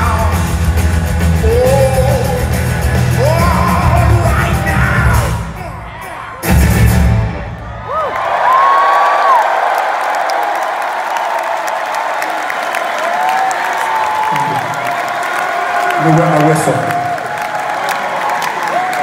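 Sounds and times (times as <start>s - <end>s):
rock band playing: 0.0s - 7.9s
crowd cheering and whooping: 7.2s - 19.0s.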